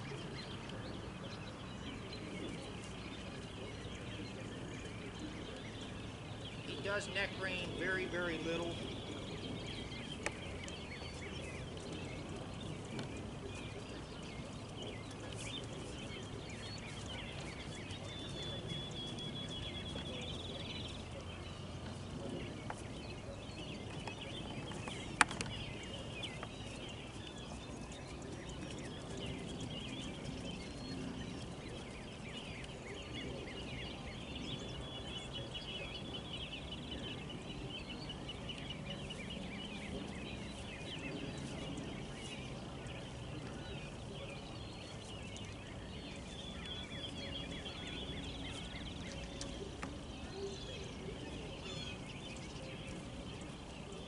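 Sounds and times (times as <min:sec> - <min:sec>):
birds chirping and trilling: 0:00.0 - 0:54.0
low outdoor rumble: 0:00.0 - 0:54.0.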